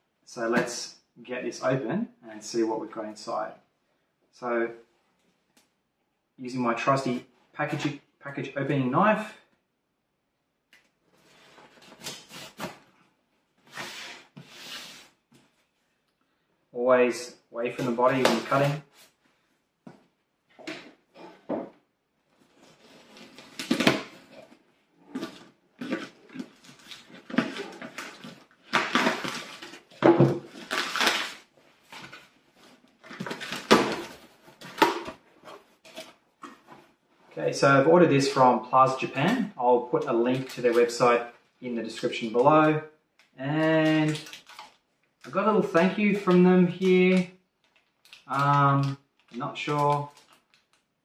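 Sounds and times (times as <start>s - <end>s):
knife scraping cardboard: 13.7s - 15.1s
packing tape ripping: 25.2s - 32.2s.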